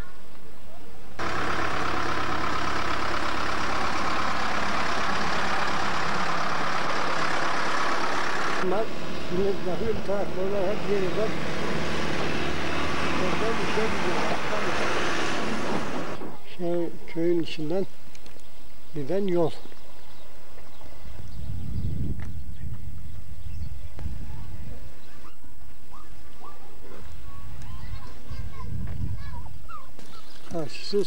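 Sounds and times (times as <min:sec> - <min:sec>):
tractor engine running: 0:01.2 - 0:16.3
men talking: 0:08.6 - 0:18.0, 0:18.9 - 0:19.7, 0:30.5 - 0:31.0.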